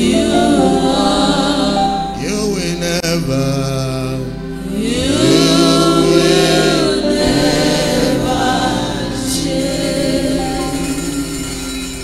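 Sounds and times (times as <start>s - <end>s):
gospel worship singing: 0.0s - 12.0s.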